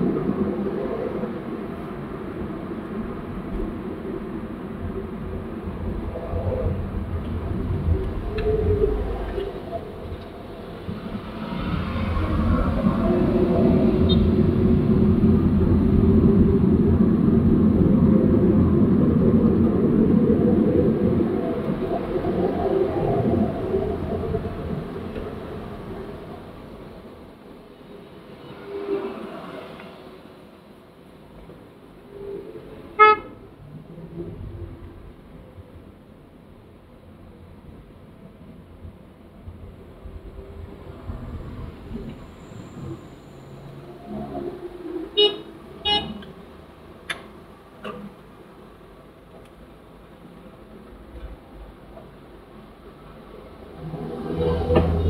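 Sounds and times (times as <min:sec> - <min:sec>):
road and tyre noise inside car: 0:00.0 - 0:55.0.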